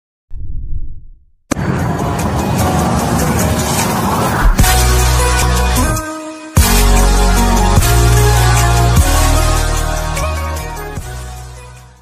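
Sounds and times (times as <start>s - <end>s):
rushing sound effect with rumble: 0.3s - 5.9s
loud intro music: 1.5s - 12.0s.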